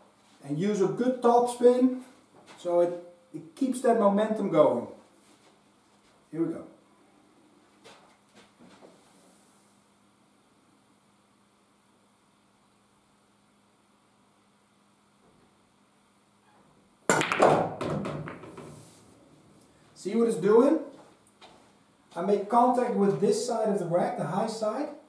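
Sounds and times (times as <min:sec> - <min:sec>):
cue ball clacking into rack: 0:17.1 - 0:18.8
pool balls clicking and knocking: 0:17.1 - 0:19.0.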